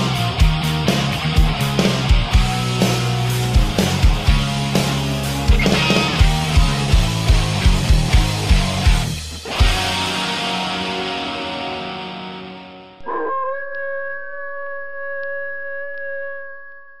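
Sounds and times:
wolf howling: 13.0s - 17.0s.

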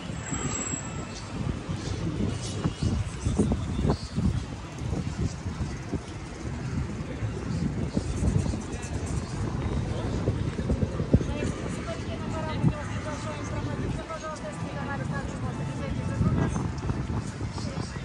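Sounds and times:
faint voices of people: 0.0s - 18.0s
wind buffeting microphone: 0.0s - 18.0s.

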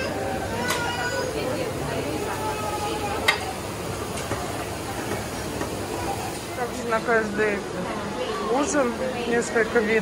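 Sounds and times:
busy restaurant room noise: 0.0s - 10.0s.

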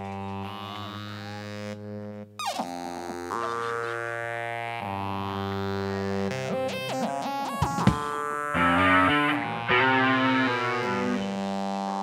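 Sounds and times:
live band droning chord: 8.6s - 11.8s.

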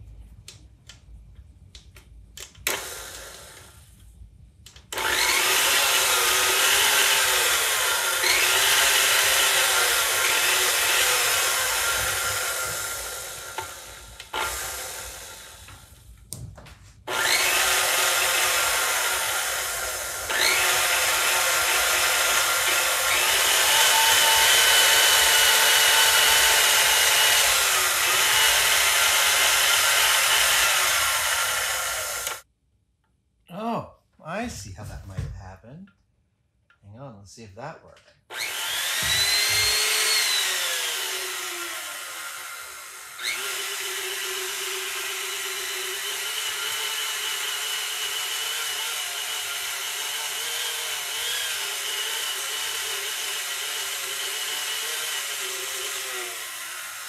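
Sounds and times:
stand mixer motor running: 5.0s - 15.5s, 17.1s - 32.4s, 38.3s - 50.6s.

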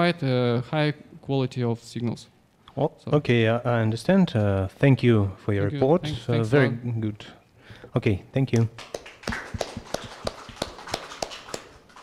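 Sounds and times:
small audience clapping: 8.5s - 12.0s.

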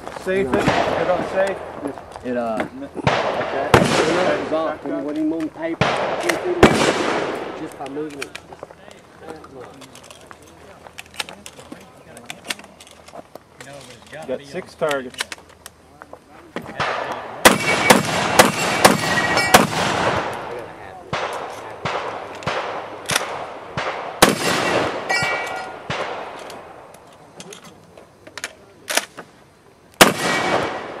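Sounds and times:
shotgun shots: 0.5s - 1.7s, 3.0s - 4.8s, 5.8s - 7.8s, 16.8s - 26.8s, 30.0s - 31.0s
steel plates ringing: 17.6s - 19.8s, 24.6s - 25.9s.

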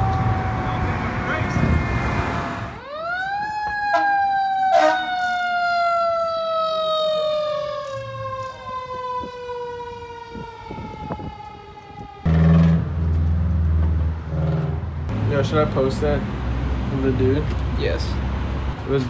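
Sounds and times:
fire engine siren: 0.0s - 13.4s.

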